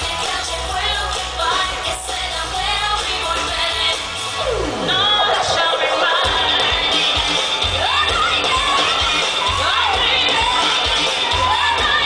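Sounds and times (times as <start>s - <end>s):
crowd cheering and shouting: 0.0s - 12.0s
loud pop dance song: 0.0s - 12.0s.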